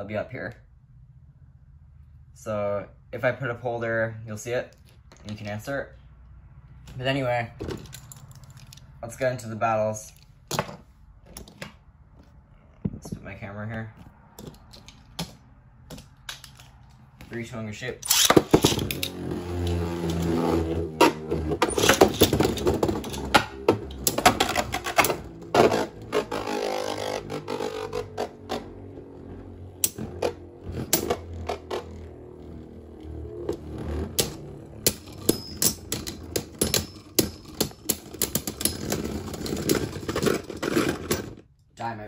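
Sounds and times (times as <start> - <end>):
spinning tops whirring: 21.5 - 37.2.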